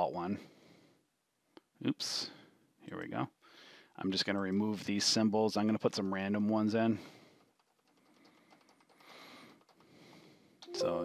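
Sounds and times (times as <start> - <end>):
computer mouse clicking: 4.2 - 4.9, 7.3 - 10.3.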